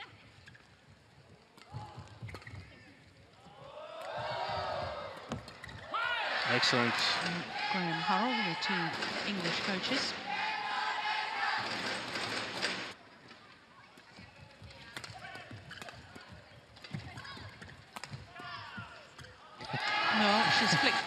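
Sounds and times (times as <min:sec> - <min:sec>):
crowd noise: 0:06.2 - 0:14.1
rackets hitting shuttlecock: 0:14.9 - 0:18.4.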